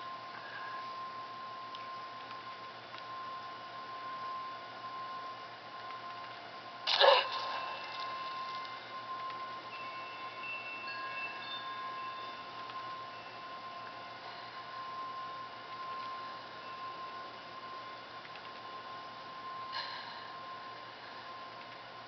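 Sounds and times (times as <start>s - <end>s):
thin high tone: 0.0s - 21.4s.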